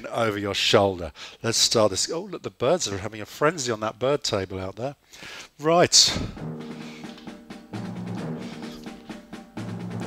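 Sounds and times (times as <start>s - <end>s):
light drums: 6.1s - 10.0s
low synth notes: 6.2s - 10.0s.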